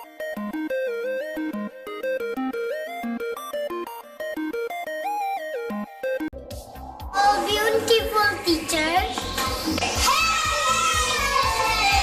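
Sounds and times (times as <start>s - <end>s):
background music with beat: 0.0s - 12.0s
young children calling out: 10.0s - 12.0s.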